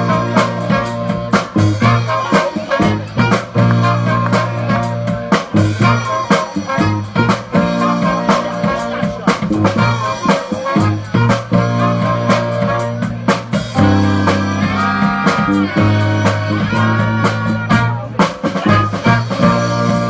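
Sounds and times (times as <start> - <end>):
deep bass line: 0.0 - 20.0
drum kit beat: 0.0 - 20.0
electric guitar: 0.0 - 20.0
horn section held notes: 0.0 - 20.0.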